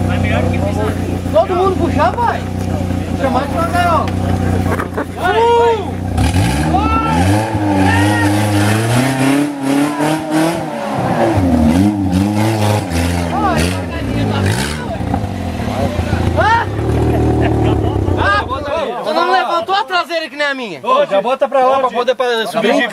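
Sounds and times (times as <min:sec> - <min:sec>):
buggy engine revving hard: 0:00.0 - 0:18.8
men shouting: 0:04.9 - 0:20.1.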